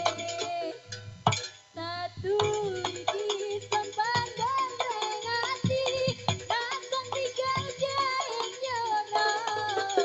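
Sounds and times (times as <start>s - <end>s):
hand drum strokes: 0.0s - 10.0s.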